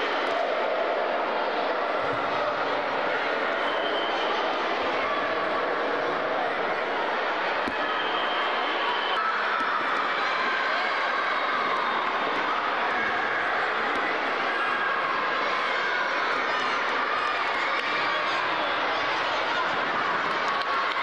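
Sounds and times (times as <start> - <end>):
children shouting and chattering: 0.0 - 21.0.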